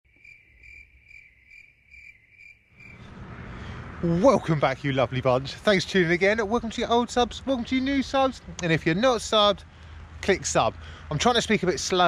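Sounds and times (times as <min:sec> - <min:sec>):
outdoor wind noise: 0:00.1 - 0:12.0.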